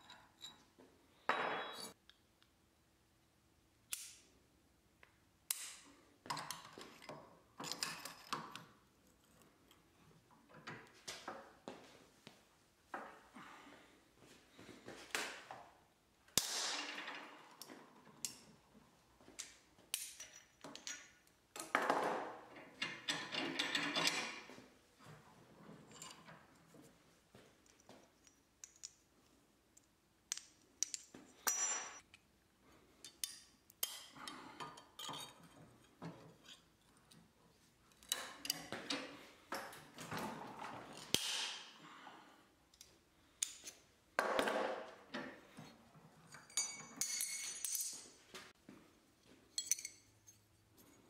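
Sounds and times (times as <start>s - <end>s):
metal clinks and clatters: 46.2s - 48.2s, 49.5s - 51.0s.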